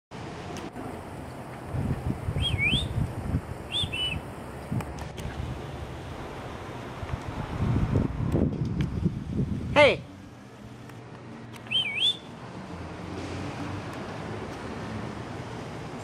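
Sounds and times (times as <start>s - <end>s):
wind rumbling on microphone: 1.4s - 9.8s
bird warbling whistles: 2.4s - 3.0s, 3.7s - 4.2s, 11.7s - 12.3s.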